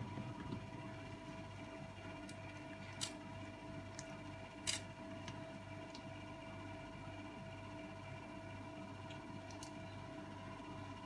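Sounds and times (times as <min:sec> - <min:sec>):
room hum with constant tone: 0:00.0 - 0:11.0.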